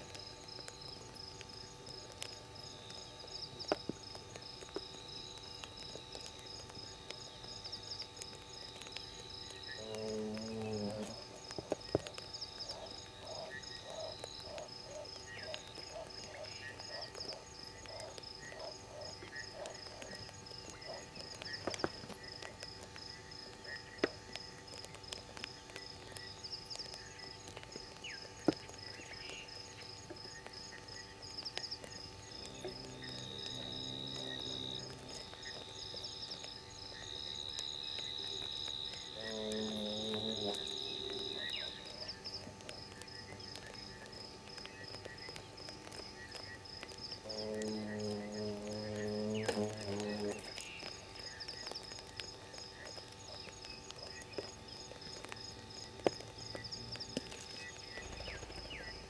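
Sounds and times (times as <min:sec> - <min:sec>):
pulsing high-pitched insect trill: 0:00.0 - 0:59.0
steady insect trill: 0:00.0 - 0:59.0
low frog calls: 0:08.8 - 0:24.9, 0:28.0 - 0:54.6.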